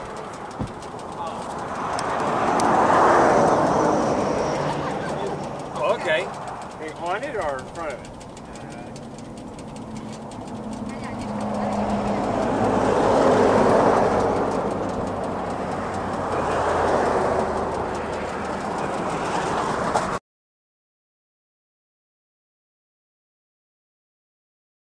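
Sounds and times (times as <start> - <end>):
road traffic passing: 0.0 - 20.2.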